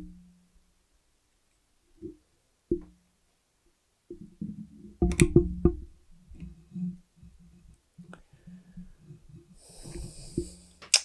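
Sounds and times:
sharp clicks: 10.8 - 11.0.

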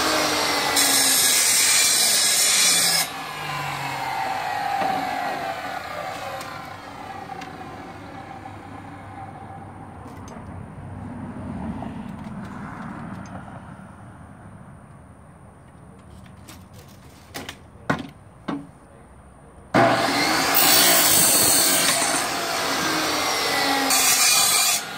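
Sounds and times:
chop saw cutting metal: 0.0 - 8.7, 19.8 - 24.9
saw blade spinning down whine: 2.0 - 9.8.

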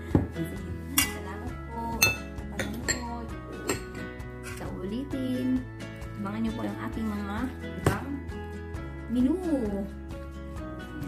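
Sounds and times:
background music: 0.0 - 11.0
dishes and spoon clinking: 1.0 - 1.3, 1.9 - 4.7.

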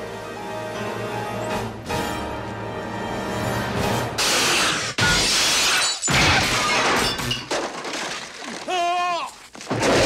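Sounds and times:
glass shattering: 5.0 - 8.7.

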